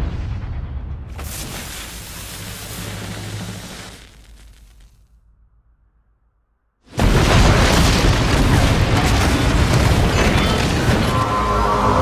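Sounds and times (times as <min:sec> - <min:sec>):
rumble with crackling debris: 0:00.0 - 0:05.3, 0:06.9 - 0:11.4
huge explosion blast: 0:07.0 - 0:11.1.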